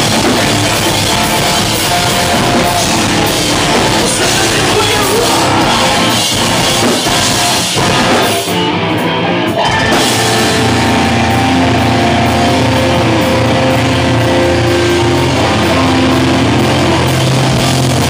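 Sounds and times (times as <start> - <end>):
hardcore band playing live: 0.0 - 18.0
ringing guitar chords: 0.0 - 18.0.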